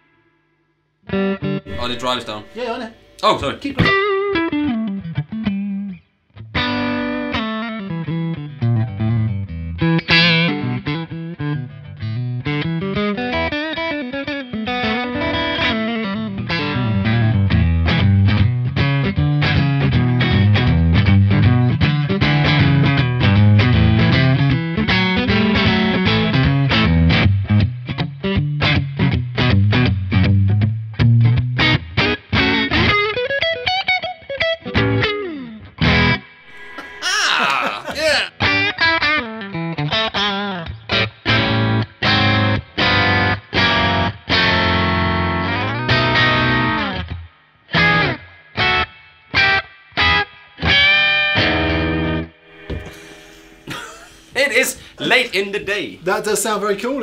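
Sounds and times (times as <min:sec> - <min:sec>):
overdriven electric guitar: 0:03.8 - 0:36.8, 0:38.5 - 0:53.6.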